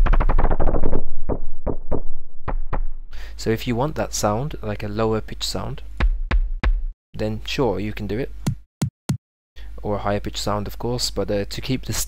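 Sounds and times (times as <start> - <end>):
kick drum hits: 6.0 - 7.0.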